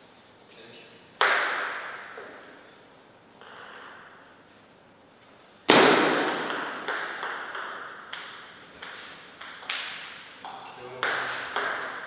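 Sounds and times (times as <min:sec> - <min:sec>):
table tennis ball knock: 0:10.5 - 0:12.0.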